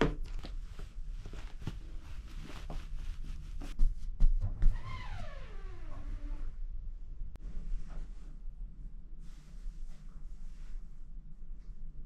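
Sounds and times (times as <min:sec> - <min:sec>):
fabric rustling: 0:00.3 - 0:04.0.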